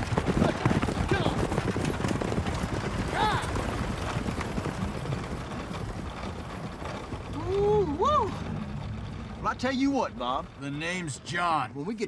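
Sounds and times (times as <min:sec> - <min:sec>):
clatter of hooves: 0:00.0 - 0:12.0
coach and harness rattling: 0:00.0 - 0:12.0.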